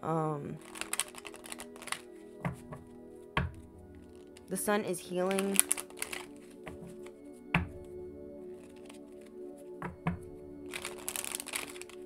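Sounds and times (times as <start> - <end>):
soft background music: 0.0 - 12.0
cards being shuffled: 0.6 - 2.8, 5.2 - 7.2, 8.6 - 9.0, 10.7 - 12.0.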